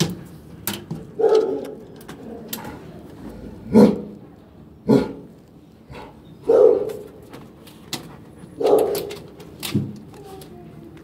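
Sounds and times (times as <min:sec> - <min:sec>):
dog barking: 0:01.2 - 0:01.8, 0:03.7 - 0:04.1, 0:06.5 - 0:07.1, 0:08.6 - 0:09.1.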